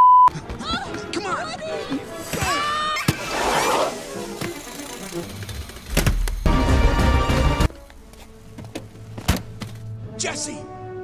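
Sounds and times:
animated film music: 0.3 - 11.0.

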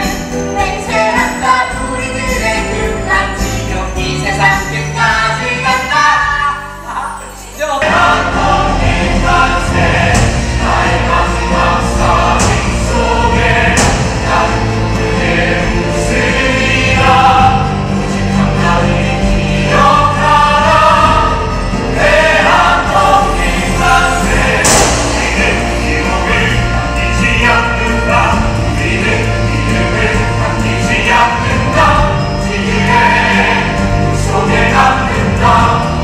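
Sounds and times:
voices singing together: 0.0 - 6.7, 7.8 - 36.0
loud musical accompaniment: 7.8 - 36.0.

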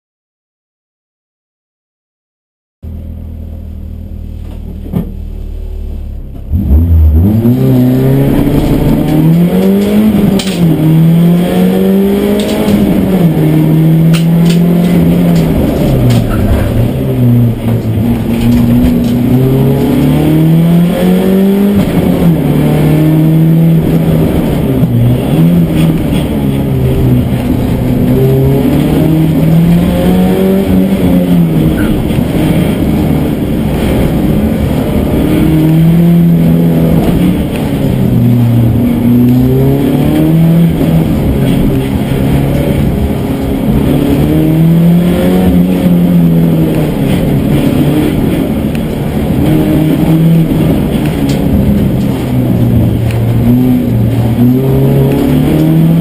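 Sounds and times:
car engine revving: 2.8 - 56.0.

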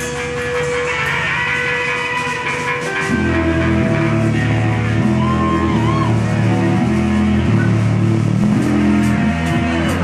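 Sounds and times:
rock band guitar and bass chords: 0.0 - 10.0.

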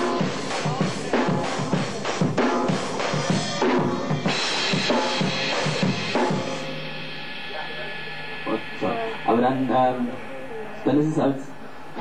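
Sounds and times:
drum kit playing: 0.0 - 11.2
cymbals ringing: 0.0 - 12.0.

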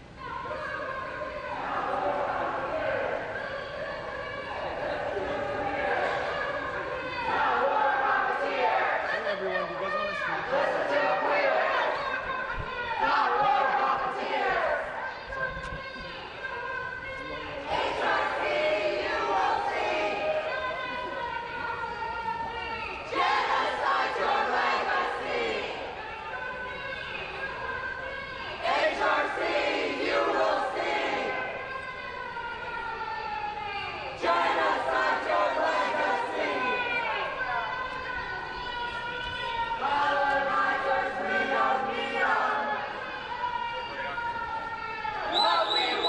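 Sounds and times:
protesters chanting and shouting: 0.0 - 46.0.

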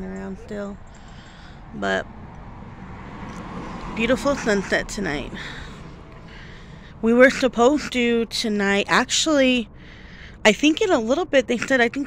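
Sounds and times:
cars passing hum: 0.0 - 12.0.

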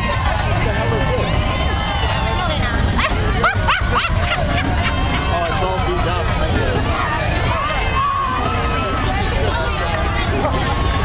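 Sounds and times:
crowd chattering and calling out: 0.0 - 11.0
high-pitched shouts and whoops: 1.0 - 5.4, 7.5 - 9.8.

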